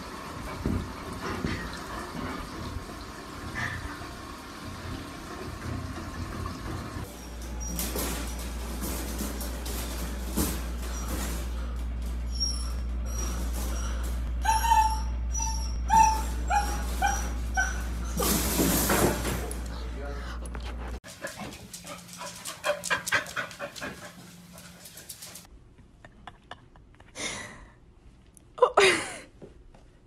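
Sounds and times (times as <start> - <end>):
puppy whimpering and yipping: 12.2 - 18.6.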